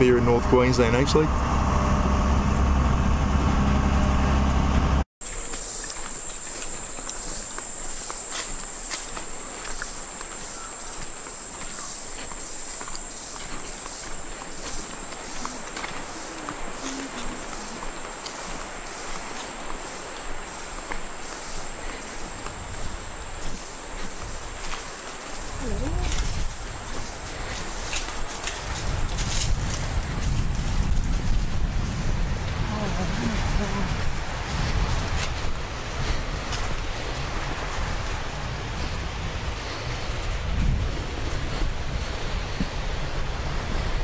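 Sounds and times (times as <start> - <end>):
low vehicle rumble: 0.0 - 7.1, 10.6 - 44.0
insect chorus shrilling: 5.2 - 30.2.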